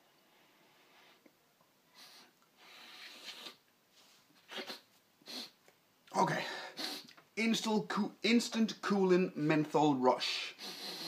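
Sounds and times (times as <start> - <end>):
man sniffing hard through nose: 1.9 - 3.6, 4.4 - 5.6, 6.5 - 7.1, 10.5 - 11.0.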